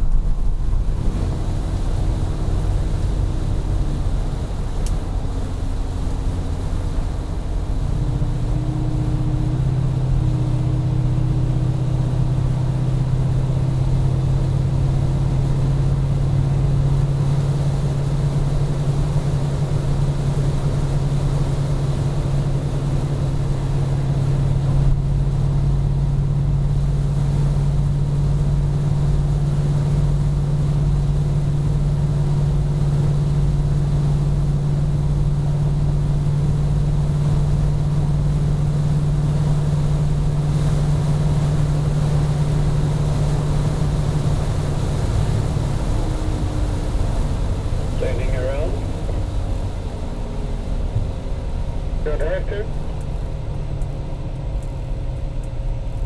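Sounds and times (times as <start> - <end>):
car engine droning from cabin: 0.0 - 56.0.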